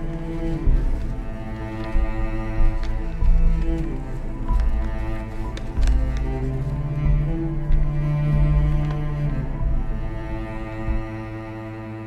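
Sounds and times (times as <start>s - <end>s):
low held string notes: 0.0s - 12.0s.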